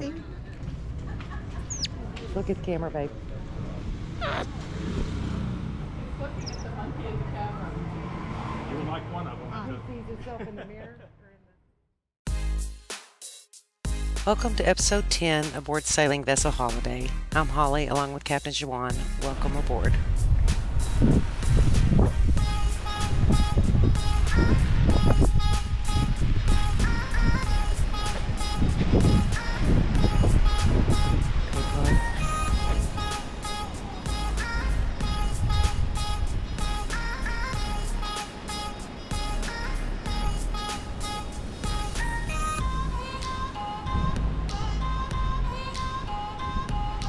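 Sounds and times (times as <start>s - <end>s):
monkey chirps: 1.6s - 2.0s, 4.2s - 4.6s, 6.4s - 6.7s
monkey high squeak: 1.7s - 1.9s, 4.2s - 4.6s, 6.4s - 6.6s
background music: 12.3s - 47.0s
wind on microphone: 19.6s - 37.8s, 41.6s - 47.0s.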